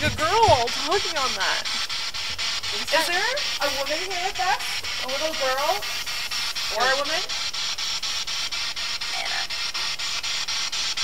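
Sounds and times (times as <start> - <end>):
radio static hiss ticking: 0.0 - 11.0.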